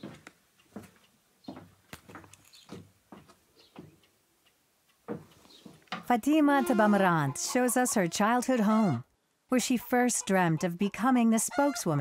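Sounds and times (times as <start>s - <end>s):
faint footsteps on earthen floor: 0.0s - 4.1s, 5.0s - 6.2s.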